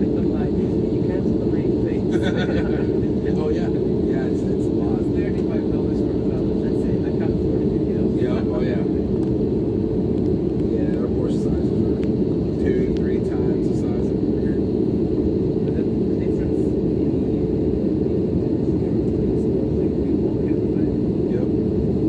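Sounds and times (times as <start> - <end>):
airliner cabin rumble: 0.0 - 22.0
murmur of passengers: 0.0 - 22.0.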